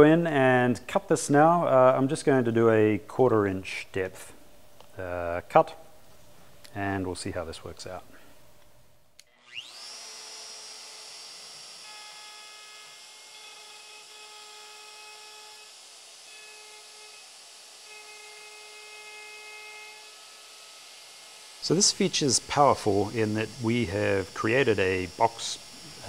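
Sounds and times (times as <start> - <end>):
router spindle whining: 9.2 - 26.0.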